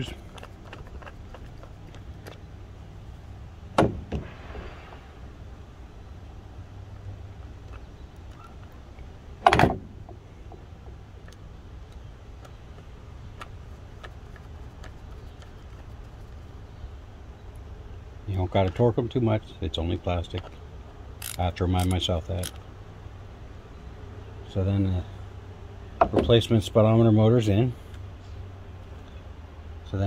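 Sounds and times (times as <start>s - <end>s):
screwdriver ticks and clicks: 21.2s - 22.6s.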